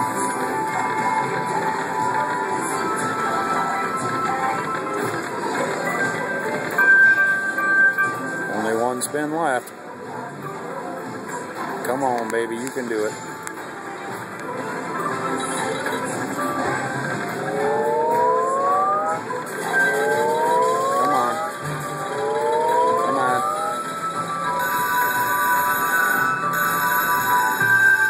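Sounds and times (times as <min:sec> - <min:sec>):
slot machine electronic music: 0:00.0 - 0:09.8, 0:11.5 - 0:28.0
steady held tones: 0:17.1 - 0:25.5
rising electronic sweeps: 0:17.4 - 0:21.6, 0:22.2 - 0:23.8.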